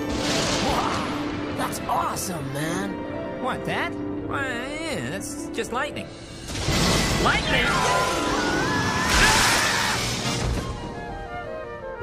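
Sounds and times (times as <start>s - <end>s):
electric crackle of lightning: 0.0s - 1.4s, 6.4s - 10.3s.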